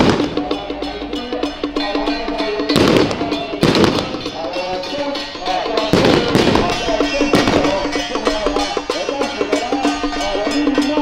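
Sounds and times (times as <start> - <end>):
firecrackers crackling: 0.0 - 0.6, 2.7 - 5.0, 5.8 - 8.0
procession music with percussion: 0.0 - 11.0.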